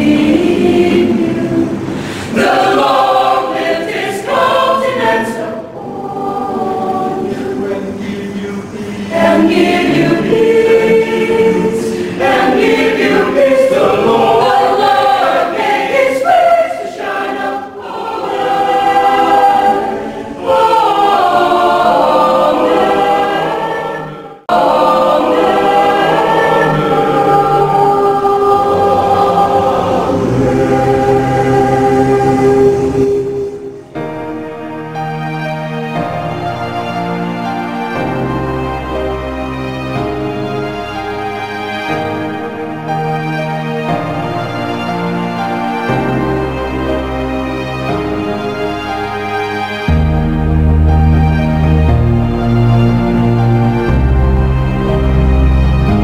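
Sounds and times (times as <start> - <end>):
mixed choir singing: 0.0 - 35.1.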